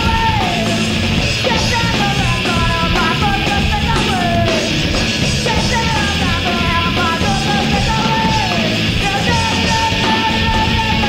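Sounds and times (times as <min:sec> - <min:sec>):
punk rock song: 0:00.0 - 0:11.0
person yelling vocals: 0:05.5 - 0:11.0.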